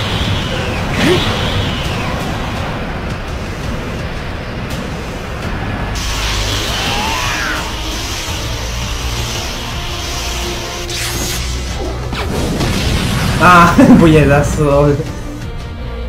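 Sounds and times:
rumbling energy sound effects: 0:00.0 - 0:14.6
fight soundtrack music: 0:00.0 - 0:16.0.

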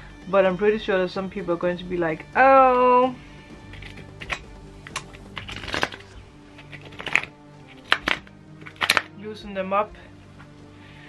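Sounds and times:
soft background music: 0:00.0 - 0:11.0
cards snapping and rustling: 0:03.6 - 0:09.2.

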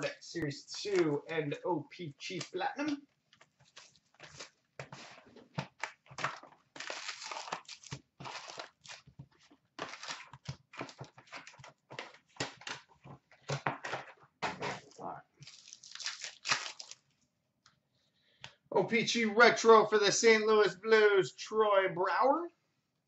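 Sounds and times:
card pack wrappers crinkling: 0:03.4 - 0:12.8, 0:14.8 - 0:17.1.

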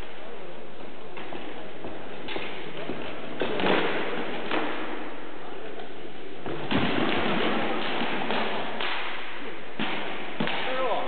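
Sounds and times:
swords striking shields and armour: 0:09.8 - 0:11.0.

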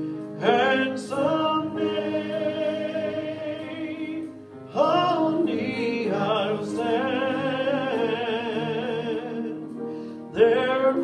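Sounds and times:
congregation singing a hymn: 0:00.3 - 0:11.0
louder singing voice: 0:00.4 - 0:09.7, 0:10.3 - 0:11.0.

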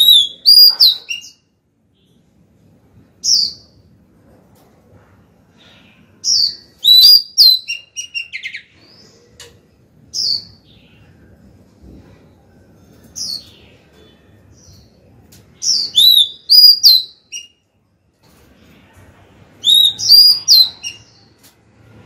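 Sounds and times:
bird whistles and chirps: 0:00.0 - 0:01.4, 0:06.3 - 0:08.7, 0:15.6 - 0:17.6, 0:19.6 - 0:21.3.

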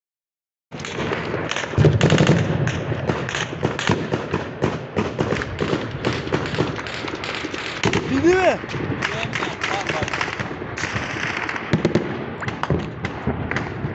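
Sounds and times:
rapid gunfire: 0:00.8 - 0:13.9.

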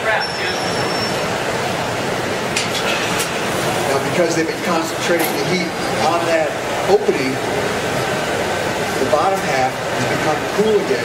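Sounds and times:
gas burners rushing: 0:00.0 - 0:11.0.

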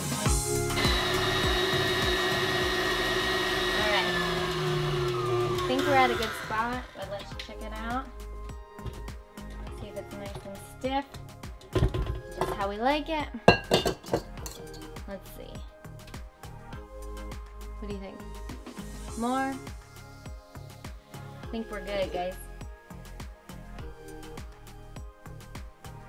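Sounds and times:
electric mixer whipping: 0:00.5 - 0:07.5.

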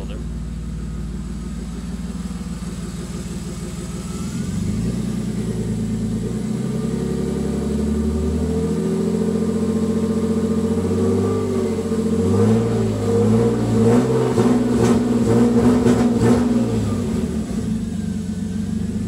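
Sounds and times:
car engine revving: 0:00.0 - 0:19.0.

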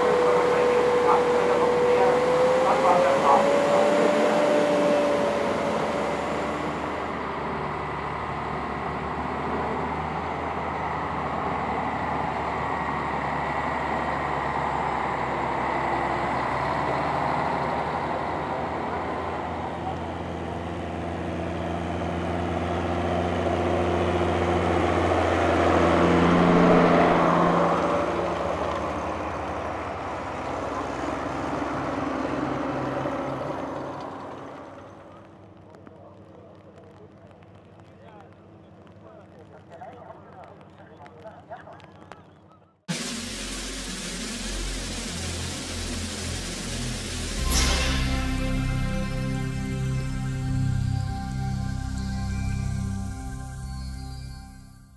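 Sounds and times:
tractor diesel engines droning: 0:00.0 - 0:37.6, 0:38.4 - 0:54.9.

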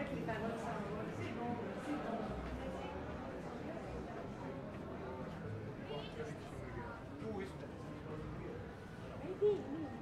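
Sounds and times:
passersby chattering: 0:00.0 - 0:10.0.

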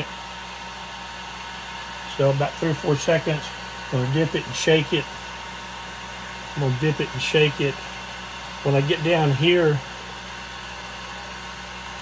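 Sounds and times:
heat gun blowing with whine: 0:00.0 - 0:12.0.

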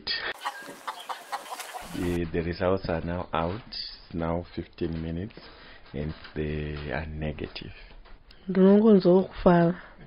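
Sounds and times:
chickens clucking: 0:00.2 - 0:02.5.

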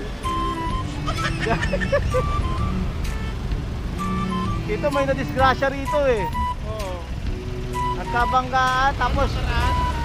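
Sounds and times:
background music: 0:00.0 - 0:10.0
motorcycle engine rumble: 0:00.0 - 0:10.0.

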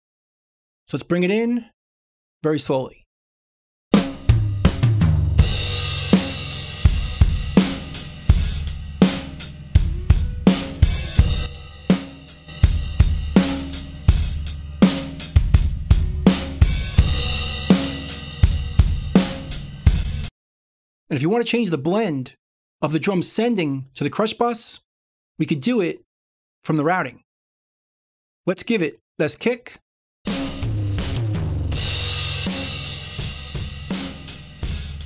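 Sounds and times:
drum kit playing steady beat: 0:03.9 - 0:20.3, 0:30.3 - 0:35.0
distorted compressed drums: 0:04.0 - 0:20.3, 0:30.3 - 0:35.0.

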